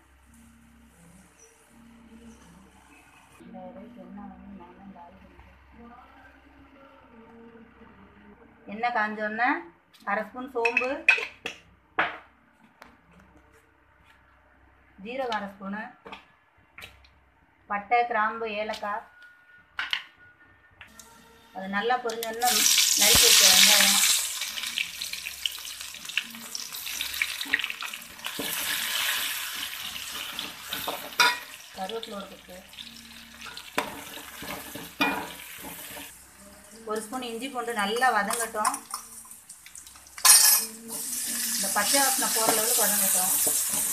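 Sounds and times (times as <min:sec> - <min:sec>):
food going into hot oil: 0:22.1 - 0:43.9.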